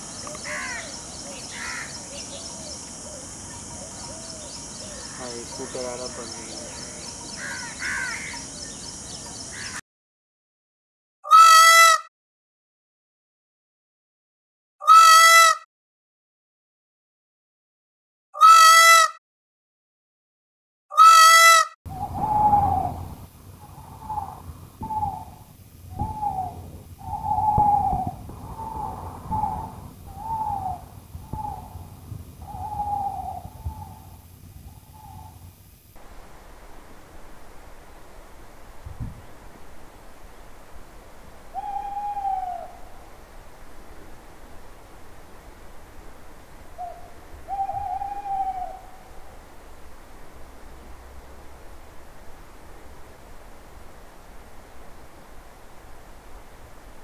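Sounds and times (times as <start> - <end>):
faint steady hiss: 0.0 - 9.7, 21.9 - 57.0
peacock calls: 0.0 - 9.8, 11.2 - 12.1, 14.8 - 15.6, 18.4 - 19.2, 20.9 - 35.5, 41.5 - 43.1, 46.8 - 49.1
owl hoots: 0.3 - 5.2, 20.9 - 35.5, 41.5 - 43.1, 46.8 - 49.3.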